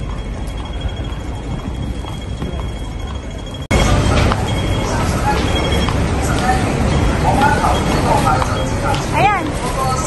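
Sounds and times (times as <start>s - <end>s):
crossing signal ticking rapidly: 0.0s - 9.0s
street noise: 0.0s - 10.0s.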